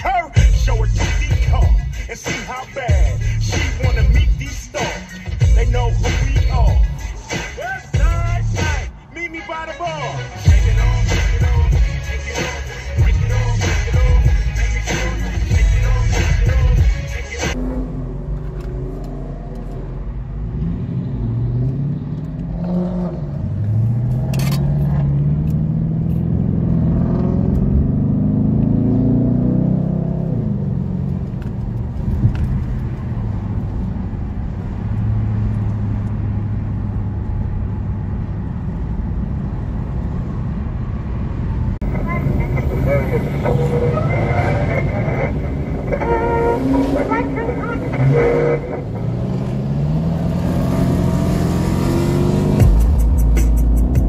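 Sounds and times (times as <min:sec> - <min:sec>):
car engine accelerating: 0:17.4 - 0:54.0
voices: 0:41.8 - 0:49.1.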